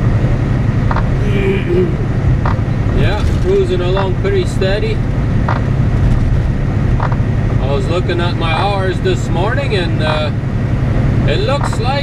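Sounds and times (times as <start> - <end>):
diesel truck engine drone: 0.0 - 12.0
tyres on wet road: 0.9 - 12.0
brief hummed voice-like sound: 1.2 - 2.2.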